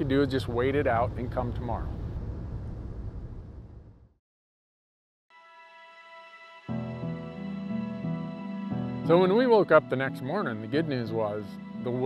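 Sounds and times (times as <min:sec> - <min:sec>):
wind: 0:00.0 - 0:04.1.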